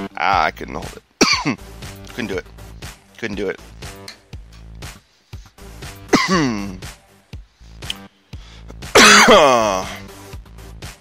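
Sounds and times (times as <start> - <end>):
background music with beat: 0.0 - 11.0
man coughing hard: 1.2 - 1.6, 6.1 - 6.8, 8.9 - 10.1.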